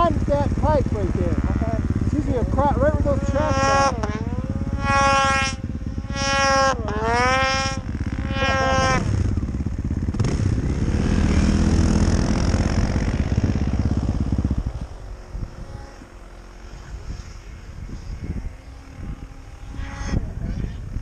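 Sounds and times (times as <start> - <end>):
snowmobile engine revving: 0.0 - 21.0.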